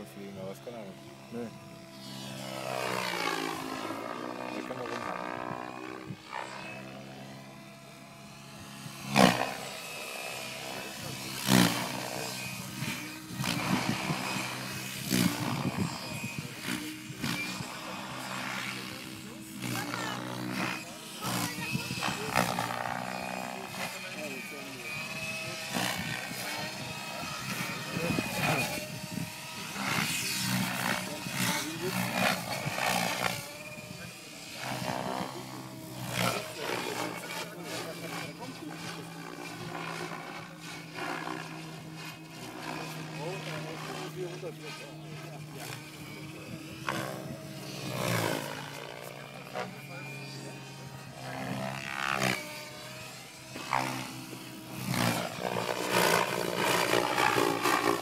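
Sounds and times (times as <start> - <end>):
model helicopter motor whine: 0.0 - 58.0
rotor blades whooshing: 0.0 - 58.0.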